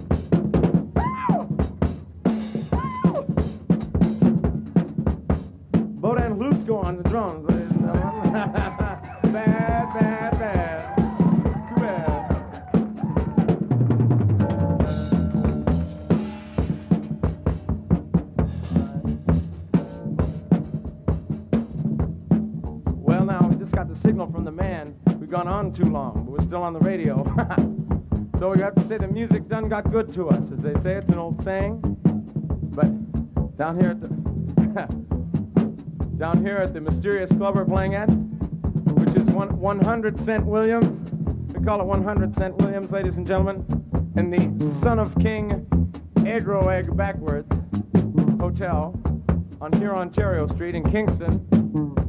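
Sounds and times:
busy drumming with rolls: 0.0s - 52.0s
bass note: 6.0s - 24.9s, 41.2s - 52.0s
electric guitar lead: 14.4s - 21.7s.

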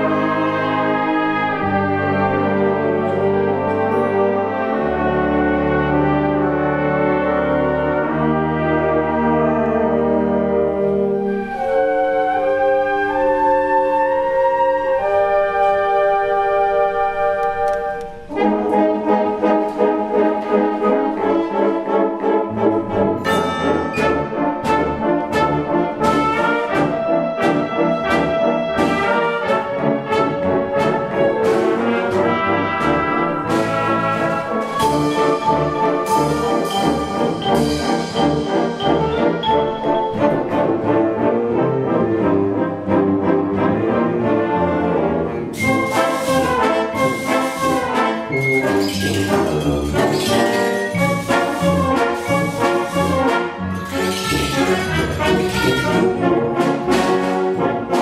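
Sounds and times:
concert wind band playing: 0.0s - 58.0s
steady percussion beat: 23.2s - 29.2s, 30.8s - 40.9s, 45.6s - 58.0s.

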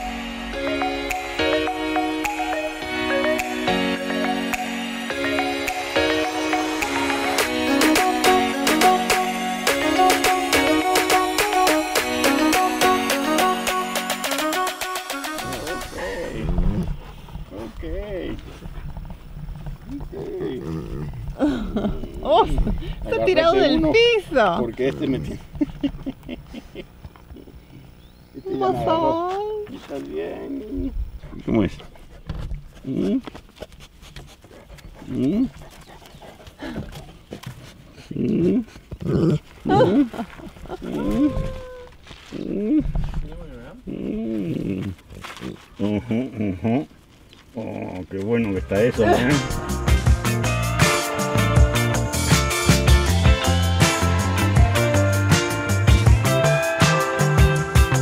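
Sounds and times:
person talking: 28.4s - 31.7s, 47.6s - 49.6s
dogs whining: 40.8s - 42.8s.

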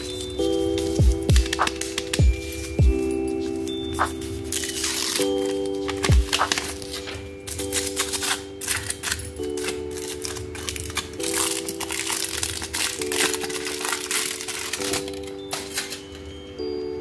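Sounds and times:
foil wrapper crinkling and tearing: 0.0s - 16.2s
music of sustained chords: 0.0s - 17.0s.

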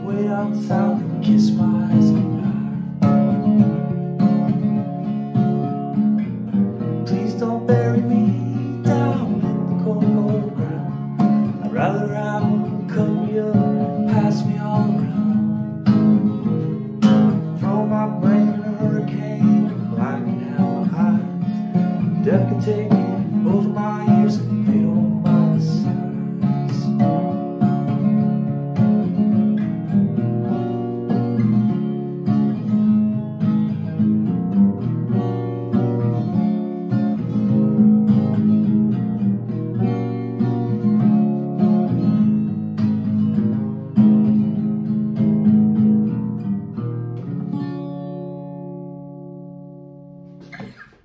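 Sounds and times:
acoustic guitar strumming: 0.0s - 51.0s.

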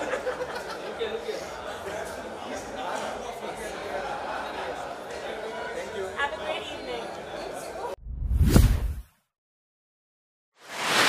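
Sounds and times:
whoosh: 8.0s - 9.1s, 10.6s - 11.0s.

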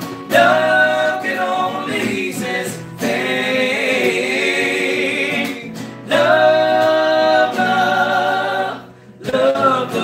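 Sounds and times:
acoustic guitars: 0.0s - 10.0s
men singing in harmony: 0.3s - 10.0s.

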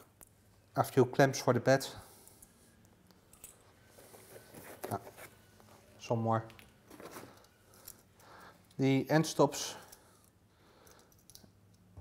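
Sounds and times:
small parts clicking: 9.8s - 11.9s.

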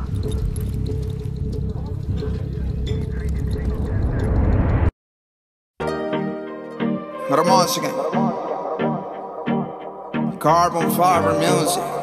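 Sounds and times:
low rumble: 0.0s - 4.9s.

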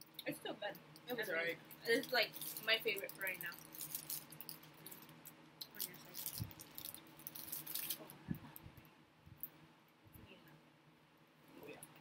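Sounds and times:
plastic wrapper crinkling: 1.0s - 8.7s.

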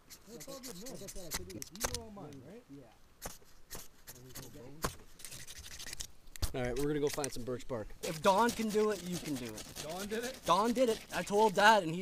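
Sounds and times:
men talking: 0.4s - 3.0s, 6.4s - 12.0s
ferro rod scraping: 3.2s - 12.0s.

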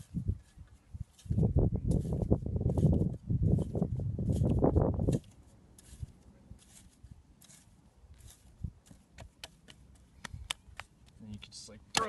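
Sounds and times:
hands scraping wet clay: 0.0s - 11.2s.

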